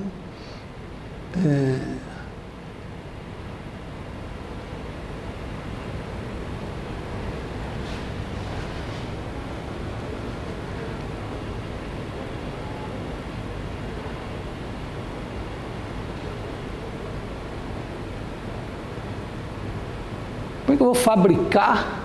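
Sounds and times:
room noise hiss: 0:00.0 - 0:22.0.

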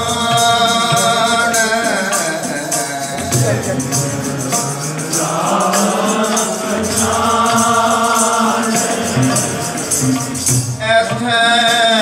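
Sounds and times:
harmonium drones: 0:00.0 - 0:12.0
light tabla strokes: 0:00.0 - 0:12.0.

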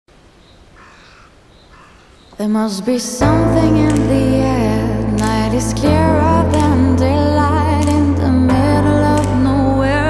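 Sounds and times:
faint outdoor background noise: 0:00.1 - 0:03.2
raven calling: 0:00.4 - 0:02.4.

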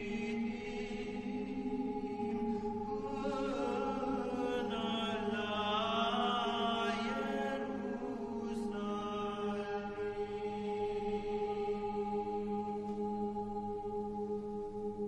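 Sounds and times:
vocal ensemble singing: 0:00.0 - 0:15.0.

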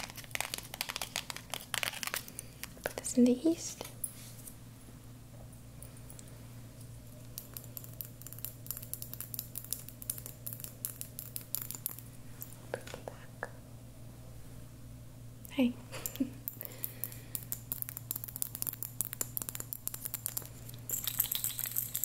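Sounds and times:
steady low hum: 0:02.2 - 0:22.0.

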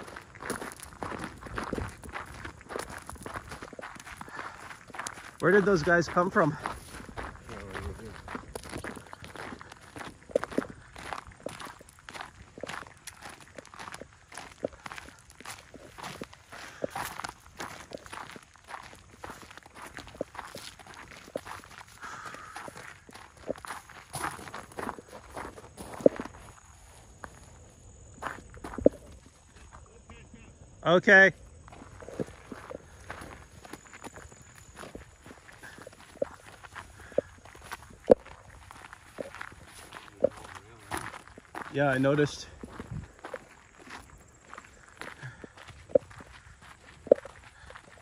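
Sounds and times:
footsteps crunching on trail: 0:00.0 - 0:48.0.

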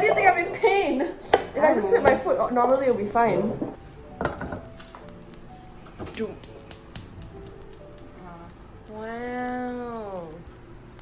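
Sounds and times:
saucepan knocking on hob grate: 0:04.2 - 0:04.7
spark igniter clicking: 0:04.7 - 0:08.2.

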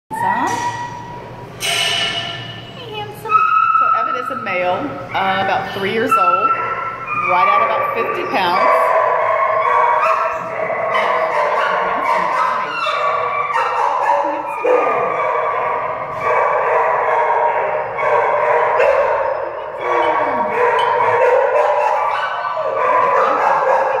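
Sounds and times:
dogs barking and howling: 0:03.3 - 0:24.0.

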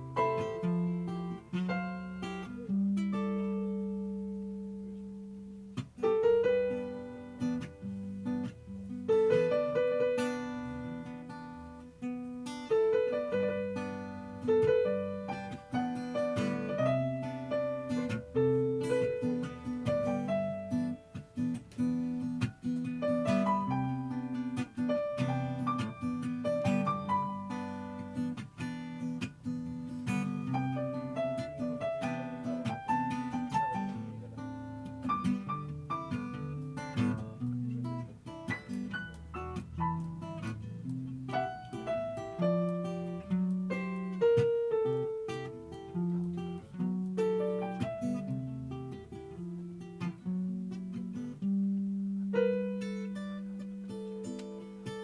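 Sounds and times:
guitar: 0:00.0 - 0:55.0.

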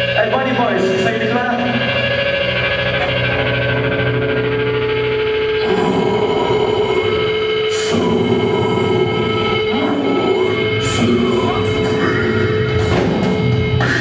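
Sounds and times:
distorted electric guitar chords: 0:00.0 - 0:14.0.

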